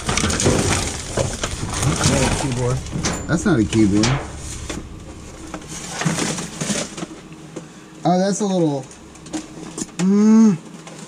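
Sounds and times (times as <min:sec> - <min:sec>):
trash rustling and clattering: 0:00.0 - 0:10.0.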